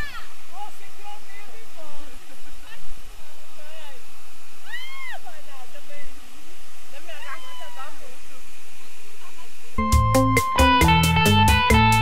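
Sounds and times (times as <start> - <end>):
voices calling out: 0.0 - 9.9.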